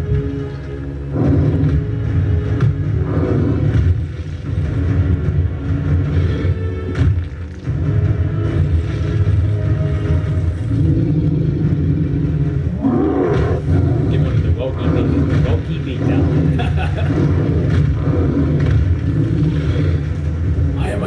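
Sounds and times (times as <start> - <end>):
deep continuous rumble: 0.0 - 21.0
rapid cracks and hits: 1.6 - 10.7, 13.3 - 21.0.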